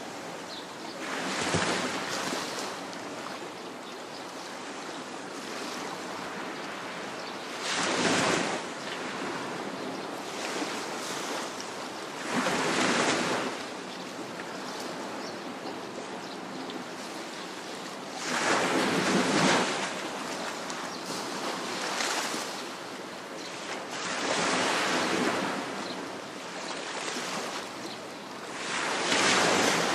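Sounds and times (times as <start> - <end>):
waves breaking on shore: 0.0 - 29.9.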